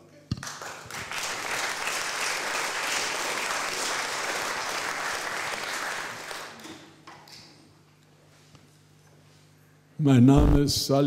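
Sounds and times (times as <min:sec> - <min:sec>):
audience applauding: 0:00.4 - 0:07.0.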